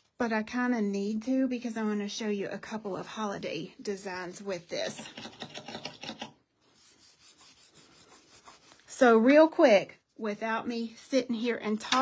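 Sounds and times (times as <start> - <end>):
scratchy rubbing on metal plate: 4.5 - 9.0.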